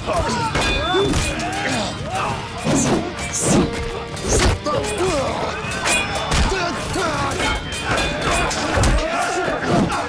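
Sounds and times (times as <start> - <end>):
dramatic background music: 0.0 - 10.0
men grunting and shouting: 0.0 - 10.0
weapon clashes: 0.1 - 10.0.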